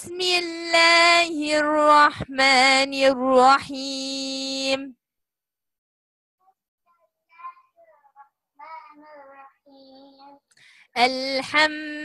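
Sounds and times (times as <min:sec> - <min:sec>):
child chanting recitation: 0:06.4 - 0:10.5.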